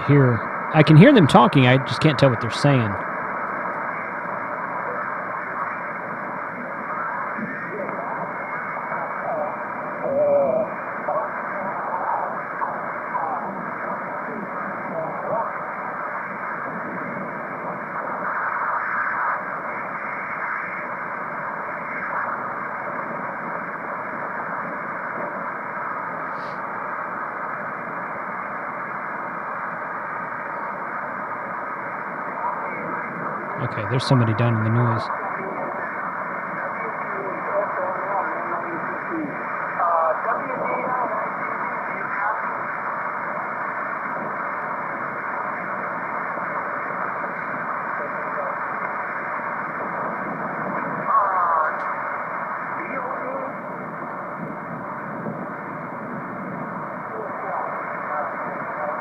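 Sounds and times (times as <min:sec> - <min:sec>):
weak garbled radio voices: 0:00.0 - 0:28.2, 0:29.0 - 0:59.0
radio static hiss: 0:00.0 - 0:59.0.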